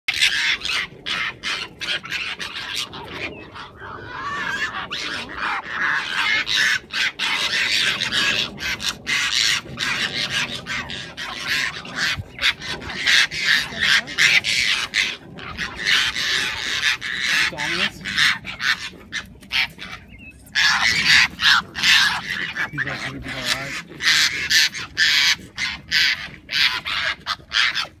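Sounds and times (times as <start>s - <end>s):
foxes screeching: 0.1s - 28.0s.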